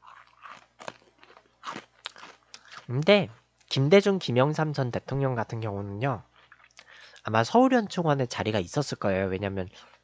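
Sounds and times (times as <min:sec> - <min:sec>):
crunchy snack chewing: 0:00.0 - 0:03.0.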